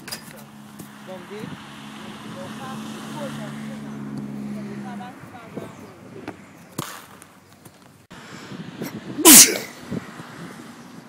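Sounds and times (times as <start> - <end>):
person sneezing: 9.2 - 9.8.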